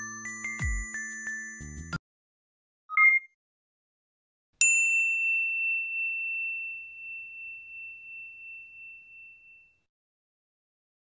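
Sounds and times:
bell-like ding: 0:04.6 - 0:09.9.

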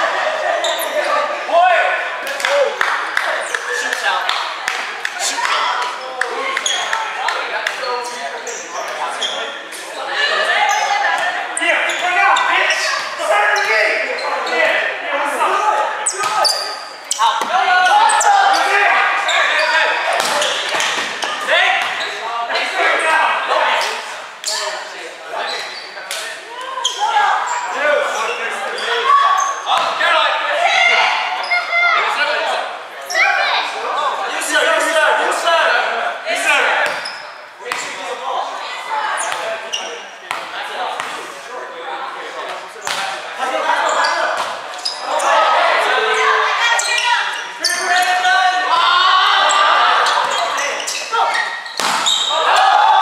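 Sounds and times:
players calling and talking: 0:00.0 - 0:53.0.

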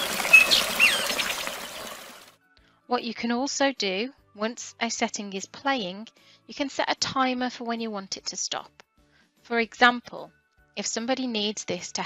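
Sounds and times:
babbling brook: 0:00.0 - 0:02.2
birds chirping: 0:00.0 - 0:02.2.

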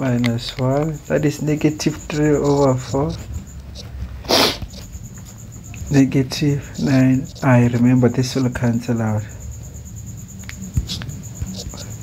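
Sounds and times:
low room hum: 0:00.0 - 0:12.0
sniff through the nose: 0:04.2 - 0:04.8.

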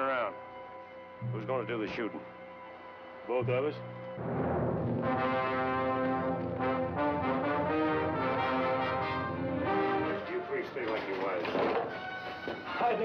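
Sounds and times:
orchestral brass chords: 0:03.4 - 0:11.1.

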